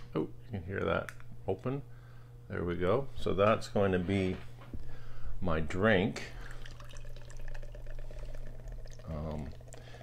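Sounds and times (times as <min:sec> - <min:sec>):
beer pouring into glass: 0:06.4 - 0:10.0.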